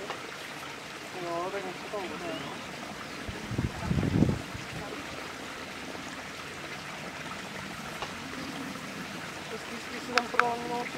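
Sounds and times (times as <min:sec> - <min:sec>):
running water trickling: 0:00.0 - 0:10.9.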